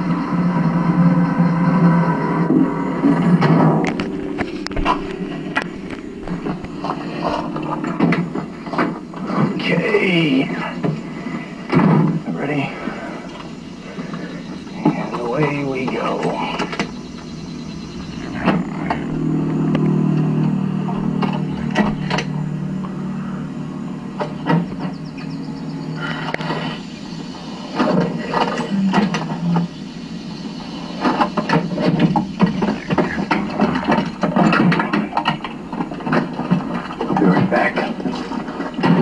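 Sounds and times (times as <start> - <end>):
vehicle engine running: 0.0 - 39.0
knocks and rattles: 31.0 - 39.0.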